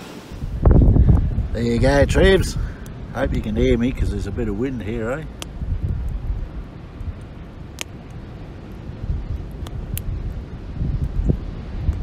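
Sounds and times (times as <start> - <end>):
campfire popping: 0.0 - 12.0
wind buffeting microphone: 0.2 - 12.0.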